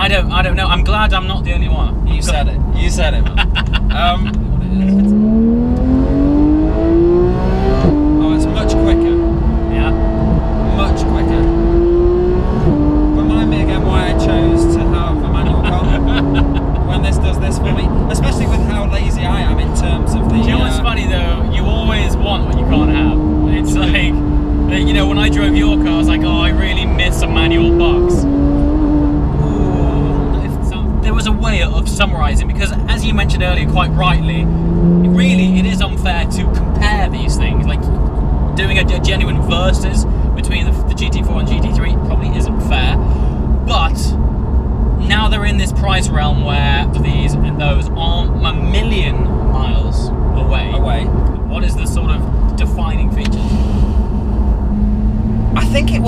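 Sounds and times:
voices talking: 0:00.0 - 0:06.0, 0:07.6 - 0:11.6, 0:13.0 - 0:28.3, 0:29.4 - 0:37.9, 0:55.6 - 0:56.0
car engine accelerating: 0:00.0 - 0:56.0.

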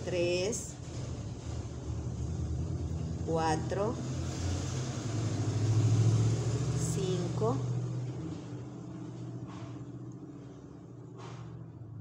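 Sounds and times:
passing vehicle engine rumble: 0:00.0 - 0:12.0.

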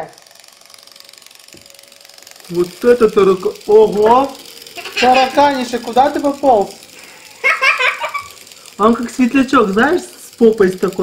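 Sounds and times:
toy robot motor whirring and rattling: 0:00.0 - 0:11.0.

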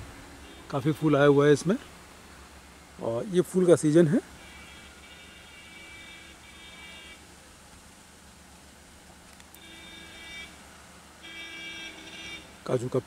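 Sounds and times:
faint pitched buzzing: 0:00.0 - 0:13.0
low steady hiss: 0:00.0 - 0:13.0.

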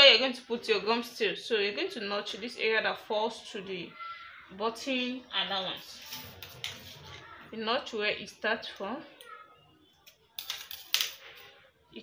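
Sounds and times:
scissors clacking on tile floor: 0:10.0 - 0:11.4.

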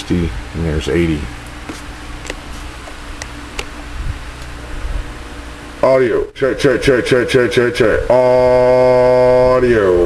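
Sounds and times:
man talking: 0:00.0 - 0:01.4, 0:05.8 - 0:10.0
low electrical hum: 0:00.0 - 0:10.0.

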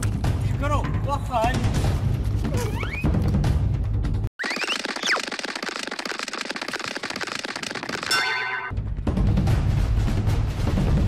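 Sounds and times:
rapid crackling clicks: 0:04.4 - 0:08.3.

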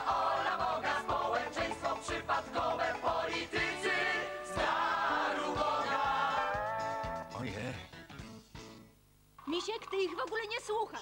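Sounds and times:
chorus singing with band: 0:00.0 - 0:07.2.

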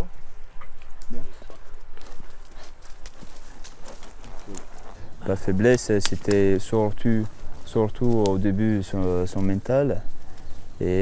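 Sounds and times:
horse hooves clopping on dirt: 0:00.0 - 0:11.0.

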